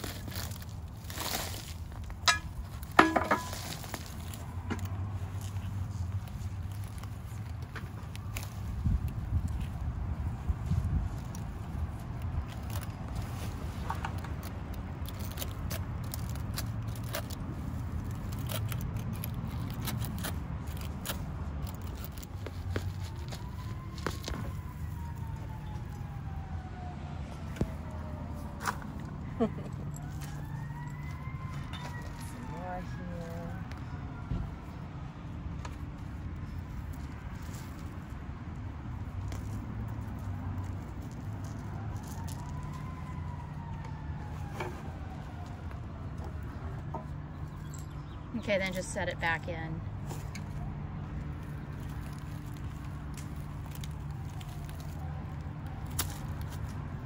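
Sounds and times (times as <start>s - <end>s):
distant siren wailing: 21.6s - 35.3s, 40.4s - 47.7s, 52.0s - 57.0s.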